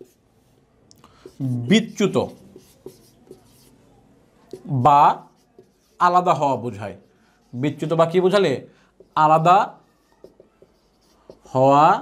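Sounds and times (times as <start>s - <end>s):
marker scratching on whiteboard: 0.0s - 12.0s
man speaking: 1.4s - 2.5s, 4.6s - 5.3s, 7.6s - 9.8s, 11.5s - 12.0s.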